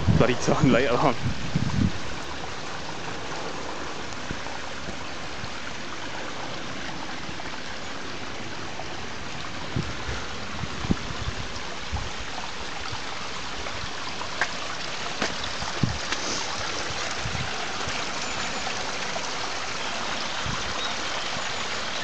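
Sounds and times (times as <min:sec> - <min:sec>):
water trickling over stones: 0:00.0 - 0:22.0
footsteps on muddy path: 0:14.4 - 0:16.6.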